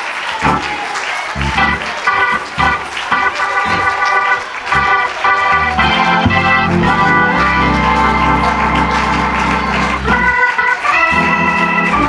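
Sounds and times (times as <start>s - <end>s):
organ chords: 0.0s - 12.0s
low bass notes: 0.4s - 0.7s, 1.4s - 4.0s, 4.6s - 10.4s.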